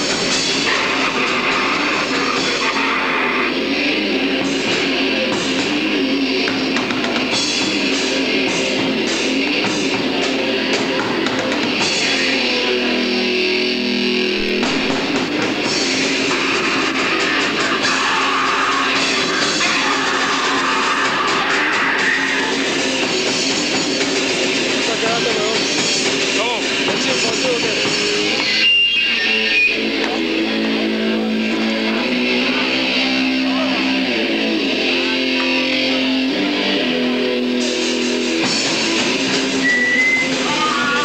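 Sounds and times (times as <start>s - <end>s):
distorted electric guitars: 0.0s - 41.0s
drums: 0.0s - 41.0s.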